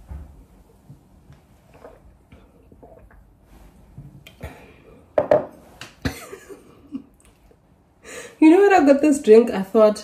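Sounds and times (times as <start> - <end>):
glass knocking on hard surface: 5.2 - 5.6.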